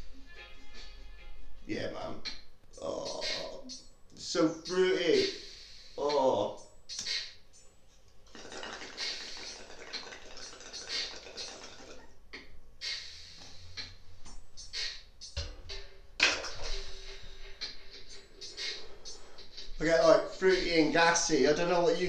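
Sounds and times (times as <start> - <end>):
quiet background music: 0.0 - 22.0.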